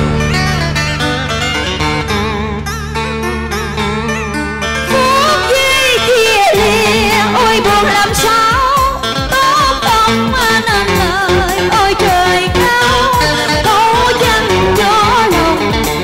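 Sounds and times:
electric guitar: 0.0s - 16.0s
electronic organ: 0.0s - 16.0s
woman singing with vibrato: 4.9s - 15.8s.

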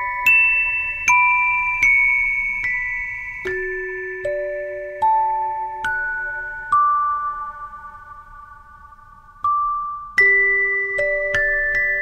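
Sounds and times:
glockenspiel note ringing: 0.0s - 8.7s.

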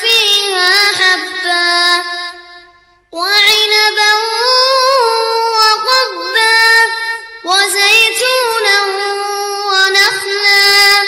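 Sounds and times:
boy reciting melodically: 0.0s - 11.0s.

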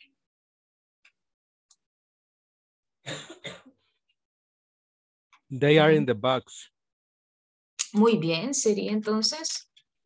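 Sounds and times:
person coughing: 3.1s - 3.8s.

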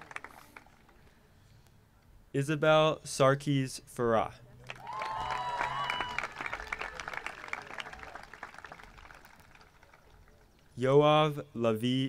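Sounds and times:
audience applauding: 0.0s - 0.8s, 4.6s - 10.4s.

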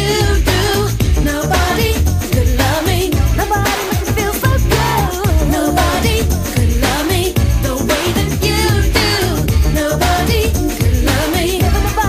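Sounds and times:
r and b song with lead vocal: 0.0s - 12.0s.

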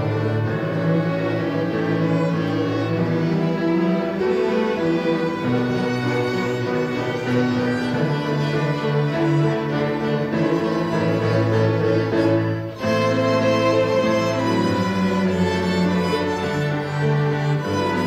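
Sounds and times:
string ensemble playing: 0.0s - 18.0s.

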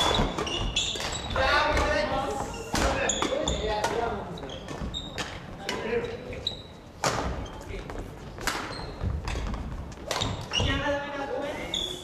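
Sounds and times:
rackets hitting shuttlecock: 0.0s - 2.1s, 8.4s - 10.7s
shoes squeaking on wooden floor: 0.0s - 12.0s.

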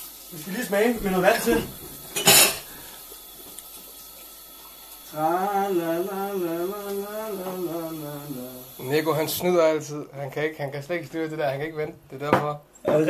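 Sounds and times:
tap water running: 0.0s - 9.8s
glassware clatter: 1.4s - 2.7s
singing water pipe drone: 5.0s - 9.0s.

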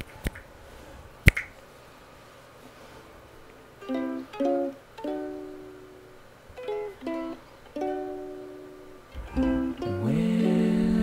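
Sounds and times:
sharp snap: 1.2s - 1.6s.

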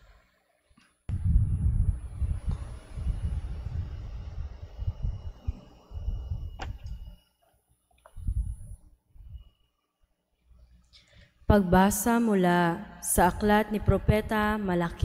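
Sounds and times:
muffled microphone handling rumble: 1.1s - 7.2s, 8.1s - 9.4s, 13.2s - 15.0s.

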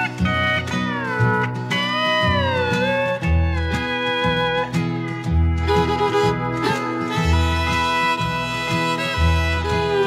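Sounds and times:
bass and guitar accompaniment: 0.0s - 10.0s
steel guitar sliding melody: 0.0s - 10.0s.

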